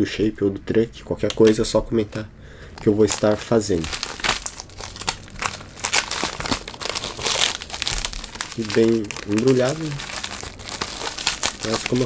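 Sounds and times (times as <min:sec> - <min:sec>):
plastic wrapping crinkling: 0:02.7 - 0:12.0.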